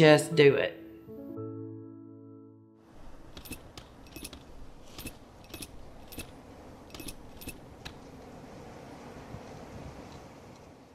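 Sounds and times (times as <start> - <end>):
metallic jingling clinks: 3.2 - 7.9.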